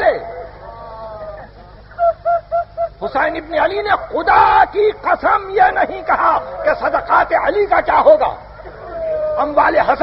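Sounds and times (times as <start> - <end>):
low tape hum: 0.0 - 10.0
person weeping and sobbing: 1.0 - 3.0.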